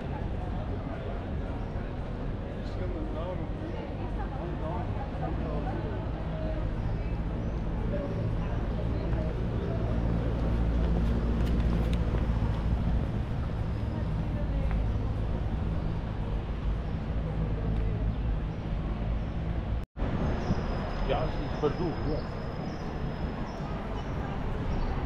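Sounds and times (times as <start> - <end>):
passers-by talking indistinctly: 0.0 - 25.0
steady traffic: 0.0 - 25.0.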